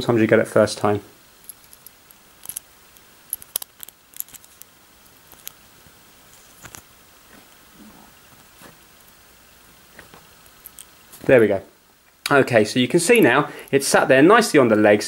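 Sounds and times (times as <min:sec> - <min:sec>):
small screwdriver clicks and scrapes: 0:03.3 - 0:04.7.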